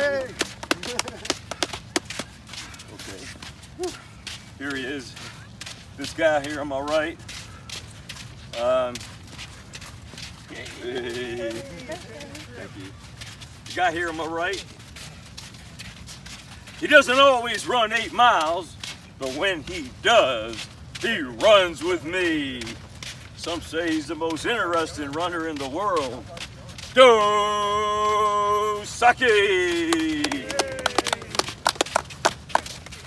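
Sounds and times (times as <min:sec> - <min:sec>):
footsteps on sand: 0:00.0 - 0:33.0
man speaking: 0:04.6 - 0:05.4, 0:06.0 - 0:07.2, 0:08.5 - 0:09.1, 0:10.5 - 0:12.9, 0:16.8 - 0:22.8, 0:23.4 - 0:31.5.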